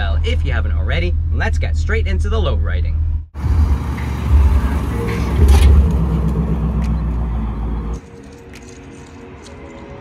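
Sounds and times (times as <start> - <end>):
car engine rumbling past: 3.4 - 8.0.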